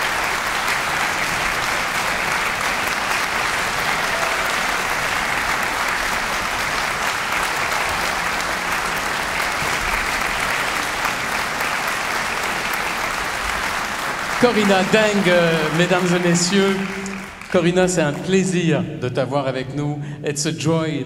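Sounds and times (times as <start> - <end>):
audience applauding: 0.0 - 18.4.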